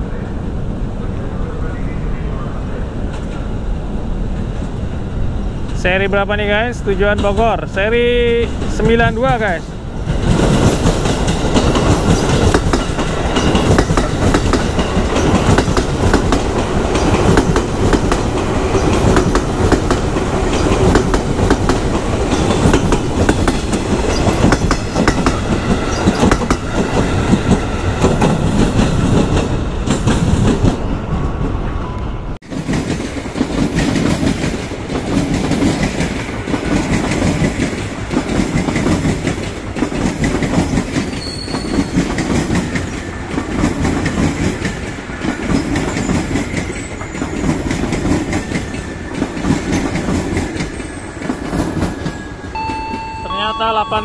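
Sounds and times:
electric trains passing: 0:00.0 - 0:54.0.

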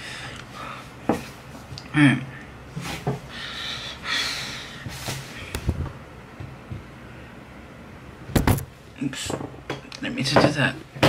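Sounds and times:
camera bumped knock: 0:08.3 - 0:08.7.

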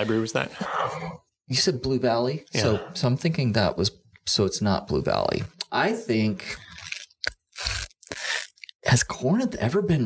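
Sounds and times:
person talking: 0:00.0 - 0:06.5.

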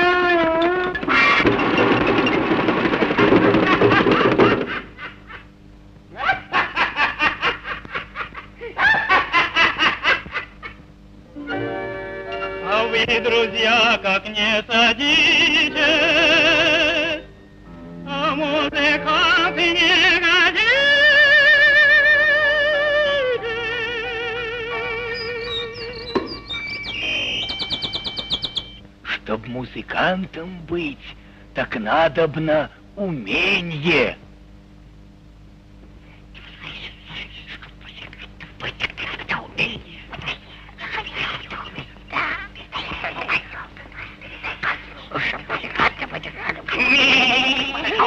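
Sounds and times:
cartoon character giggling: 0:03.5 - 0:05.5, 0:06.1 - 0:10.8, 0:44.5 - 0:48.0
music: 0:11.3 - 0:14.3, 0:15.4 - 0:27.8
whistled birdsong: 0:24.8 - 0:28.8.

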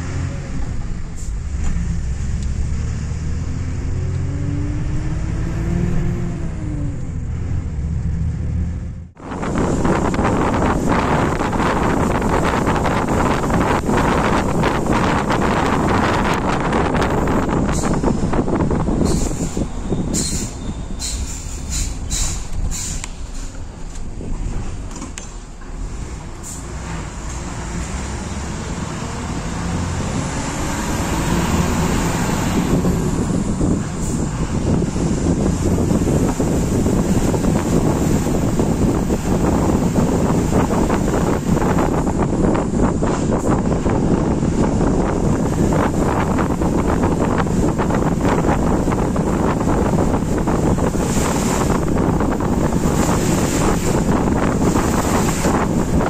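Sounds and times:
bus engine: 0:00.0 - 0:56.0
wind buffeting microphone: 0:09.1 - 0:56.0.

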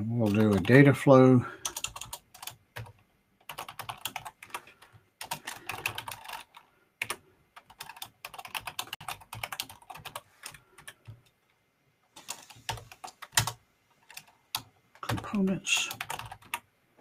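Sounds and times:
computer keyboard typing: 0:00.2 - 0:00.9, 0:01.6 - 0:11.4, 0:12.2 - 0:16.7.

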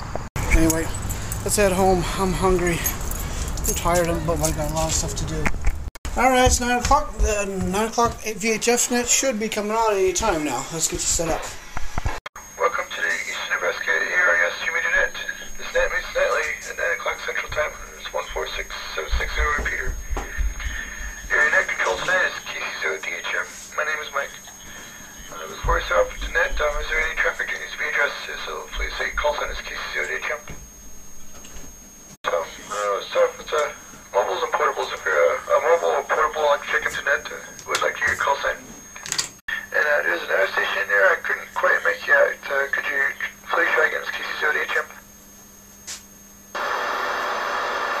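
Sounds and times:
voices over radio speaker: 0:00.4 - 0:03.0, 0:03.7 - 0:05.5, 0:12.4 - 0:30.6, 0:32.2 - 0:45.0
radio static: 0:03.7 - 0:30.8, 0:32.0 - 0:45.3, 0:46.5 - 0:48.0.

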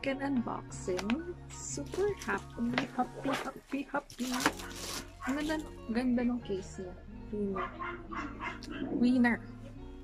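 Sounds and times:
woman speaking: 0:00.0 - 0:04.6, 0:05.2 - 0:07.8, 0:08.7 - 0:09.6
background music: 0:00.0 - 0:10.0.

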